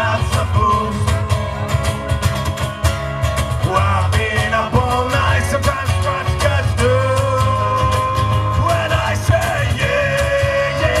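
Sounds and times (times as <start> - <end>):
bass: 0.0 - 11.0
drums: 0.0 - 11.0
strummed acoustic guitars: 0.0 - 11.0.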